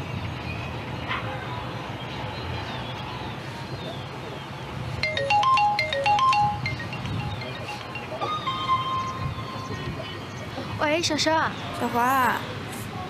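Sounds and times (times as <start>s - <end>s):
marimba phone ringtone: 5.0s - 9.9s.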